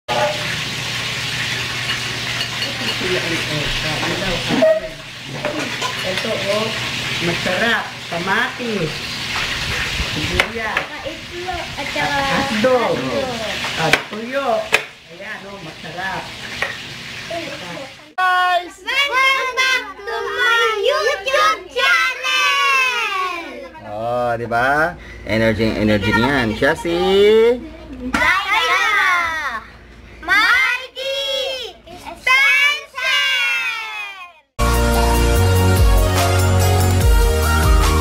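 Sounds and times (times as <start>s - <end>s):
children's voices: 17.3s - 23.9s, 26.1s - 34.5s.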